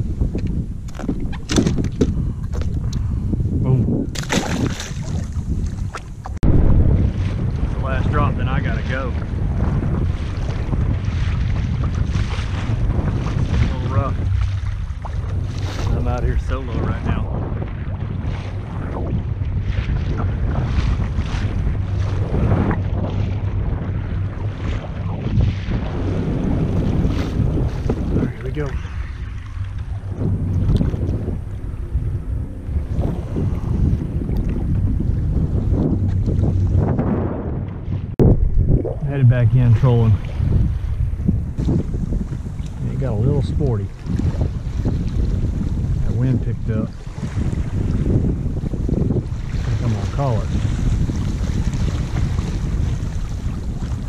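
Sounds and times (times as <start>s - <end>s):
waves slapping against hull: 0.0s - 54.0s
wind buffeting microphone: 0.0s - 54.0s.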